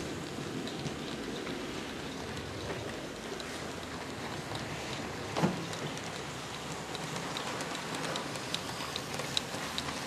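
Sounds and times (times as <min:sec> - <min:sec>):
wheels ticking over rail joints: 0:00.0 - 0:10.0
model train motor rumble and hiss: 0:03.2 - 0:10.0.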